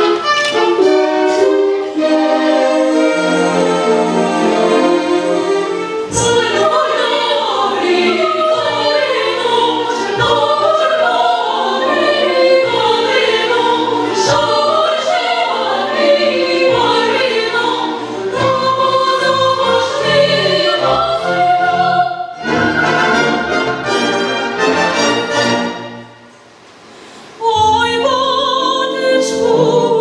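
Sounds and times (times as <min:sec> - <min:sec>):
women's choir singing: 0:00.0 - 0:24.5, 0:27.4 - 0:30.0
symphony orchestra: 0:00.0 - 0:30.0.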